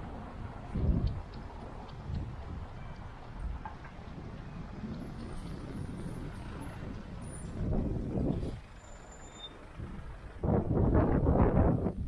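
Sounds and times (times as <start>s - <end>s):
cars and vans driving past: 0.0s - 12.0s.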